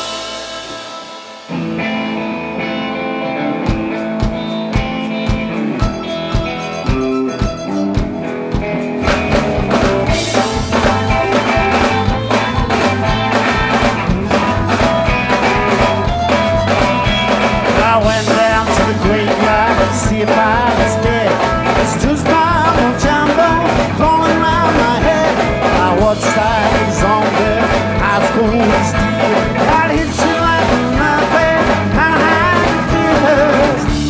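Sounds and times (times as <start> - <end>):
cymbals: 0.0 - 2.4
electric guitar chord: 0.0 - 7.0
guitar riff: 0.0 - 34.0
drum beat: 3.7 - 34.0
person singing: 15.8 - 34.0.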